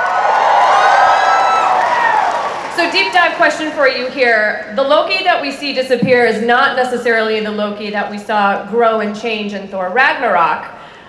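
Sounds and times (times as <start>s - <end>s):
audience cheering and whooping: 0.0s - 3.8s.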